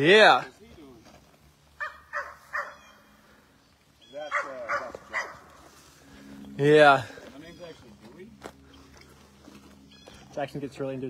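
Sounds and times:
dog barking: 1.8 - 3.0, 4.3 - 5.5.

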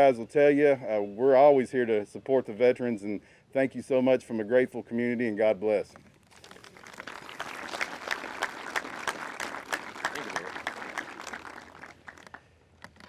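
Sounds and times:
audience applauding: 6.3 - 12.4.

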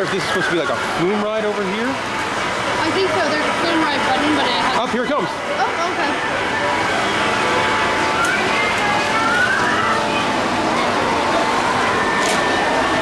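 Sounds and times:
faraway voices and chatter: 0.0 - 13.0
steady rushing noise: 0.0 - 13.0.

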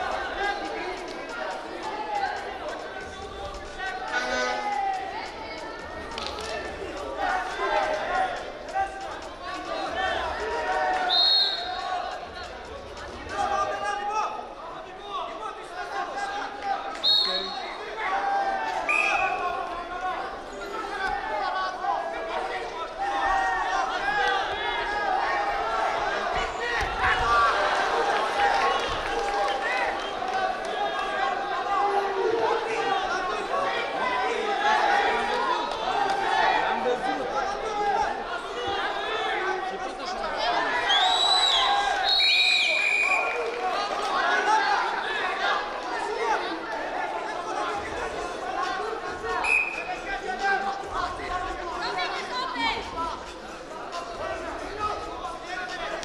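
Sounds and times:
crowd shouting in hall: 0.0 - 56.0.

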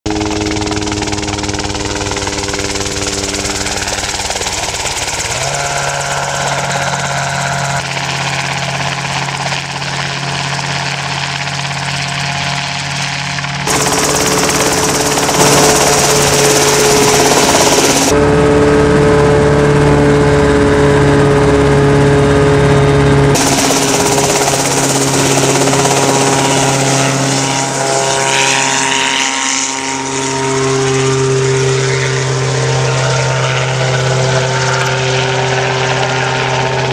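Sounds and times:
helicopter engine and rotor: 0.1 - 36.9.

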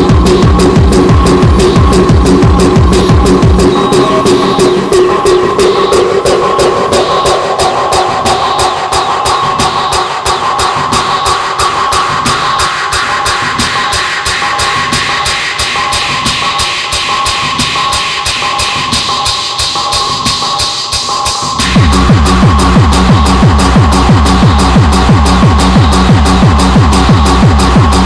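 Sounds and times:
fast electronic tekno beat: 0.0 - 28.0
held synth tone: 3.0 - 7.4.

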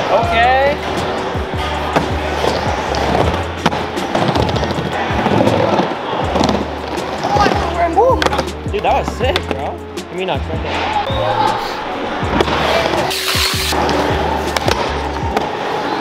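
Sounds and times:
background music: 0.0 - 16.0
skateboard wheels rolling on wood: 2.0 - 9.6.

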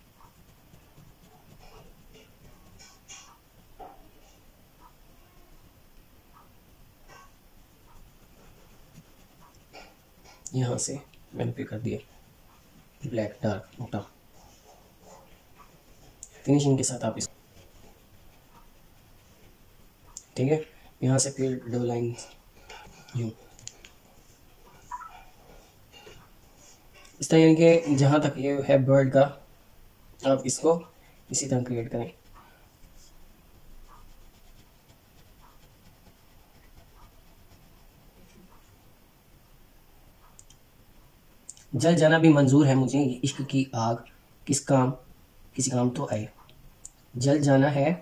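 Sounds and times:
marker drawing on paper: 0.1 - 4.5, 6.3 - 13.0, 30.8 - 38.8.

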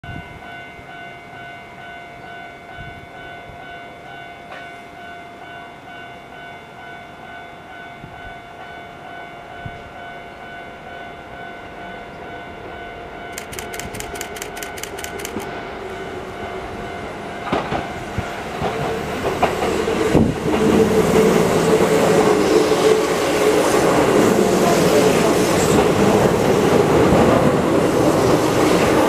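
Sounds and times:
electric train rumble: 0.1 - 29.0
rapid sharp clicks: 13.3 - 15.5.

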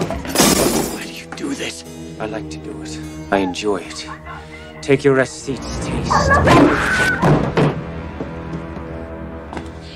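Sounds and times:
background music: 0.0 - 9.9
man's voice: 1.0 - 6.4.

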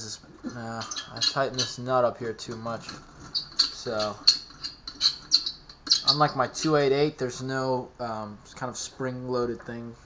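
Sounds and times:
metal-on-metal scrapes and clicks: 0.5 - 1.8, 2.5 - 6.8.

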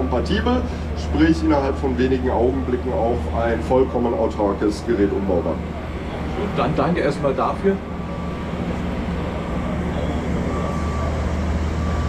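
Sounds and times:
boom lift humming: 0.0 - 12.0
faint thin whine: 0.0 - 12.0.

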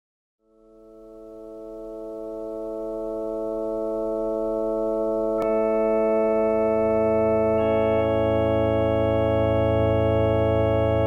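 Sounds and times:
sustained keyboard chord: 0.4 - 11.0.

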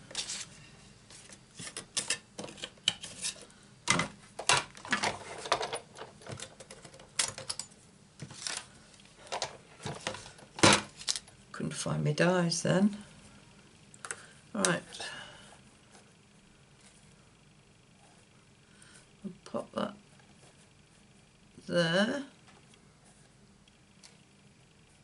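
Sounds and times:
plastic and metal clatter: 3.9 - 7.7.

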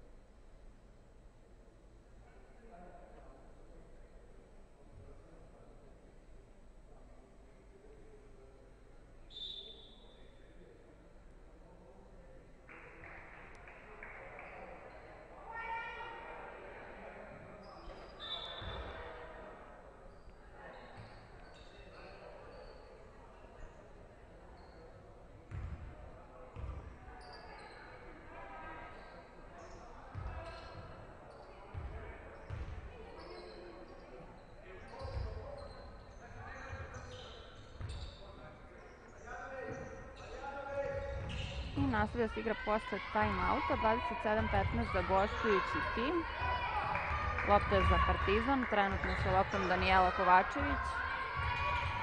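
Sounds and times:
echoing indistinct voices: 41.8 - 52.0.

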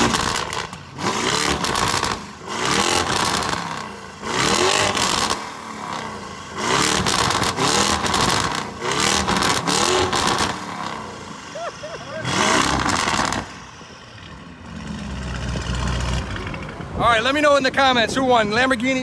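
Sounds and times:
car engine revving hard: 0.0 - 11.5, 12.1 - 13.7.

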